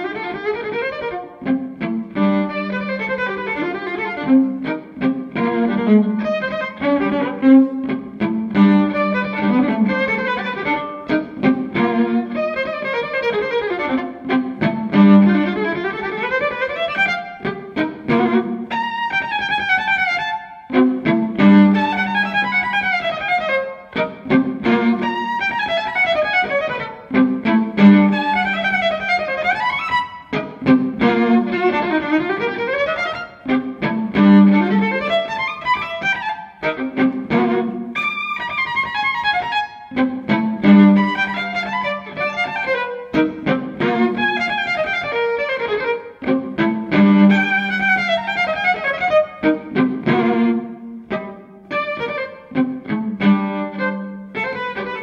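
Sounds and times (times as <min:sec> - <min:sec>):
solo violin: 0:00.0 - 0:55.0.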